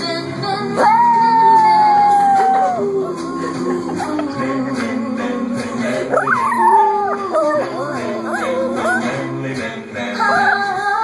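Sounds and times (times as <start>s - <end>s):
music playing: 0.0s - 11.0s
dog howling: 0.8s - 3.1s, 6.1s - 9.3s.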